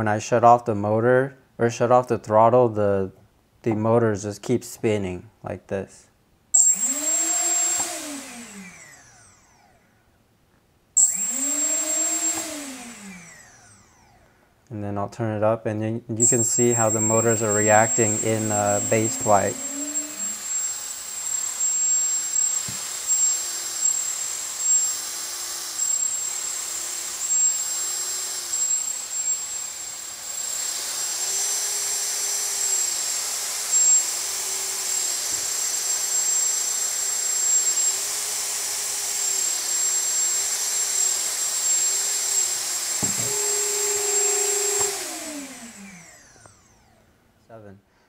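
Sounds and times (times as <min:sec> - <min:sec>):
drone motors whirring: 0:06.6 - 0:09.8, 0:11.0 - 0:14.3, 0:16.2 - 0:47.0.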